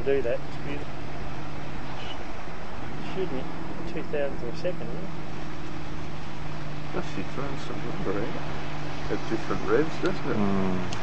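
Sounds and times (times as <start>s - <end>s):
motorboat engine humming: 0.0s - 11.0s.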